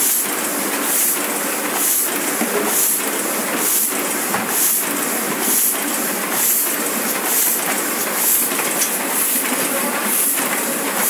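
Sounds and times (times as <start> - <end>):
printing press clattering: 0.0 - 11.0.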